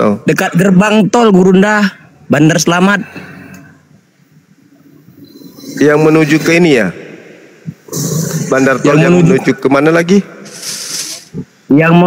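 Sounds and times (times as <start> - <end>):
faint call line hiss: 2.0 - 11.7.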